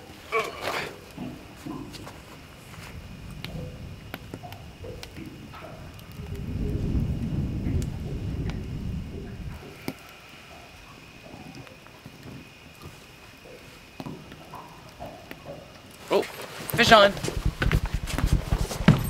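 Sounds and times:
wood fire crackling: 0:00.0 - 0:19.0
low rumble: 0:01.6 - 0:10.0.

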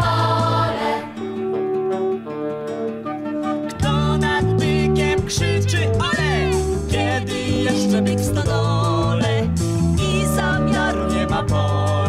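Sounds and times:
strummed acoustic guitar: 0:00.0 - 0:08.5
sung music: 0:00.0 - 0:12.0.

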